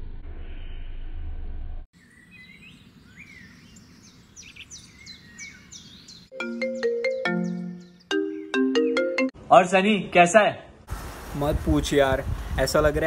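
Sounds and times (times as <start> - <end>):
birds chirping: 2.0 - 9.3
melodic phone ringtone: 6.3 - 9.4.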